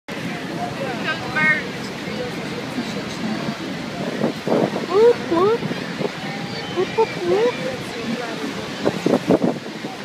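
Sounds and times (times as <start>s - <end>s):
faint murmur of voices: 0.1s - 10.0s
waterfall rushing: 0.1s - 10.0s
wind on microphone: 1.8s - 10.0s.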